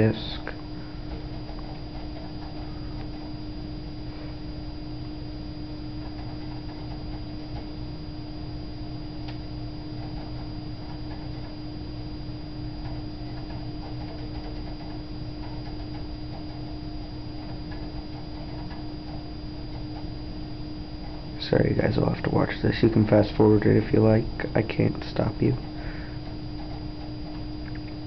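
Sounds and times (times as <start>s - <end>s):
cd drive ticks: 0.0s - 28.0s
computer hum: 0.0s - 28.0s.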